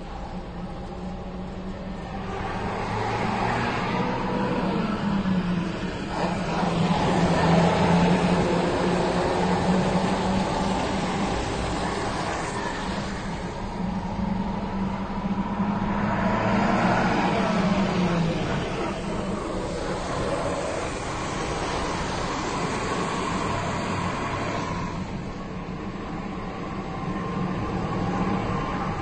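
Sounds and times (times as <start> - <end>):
truck engine drone: 0.0 - 29.0
tyre and road noise: 0.0 - 29.0.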